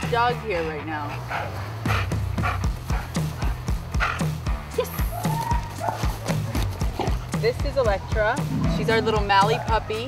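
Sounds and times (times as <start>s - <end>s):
low bass line: 0.0s - 10.0s
music with thumping beat: 1.8s - 10.0s.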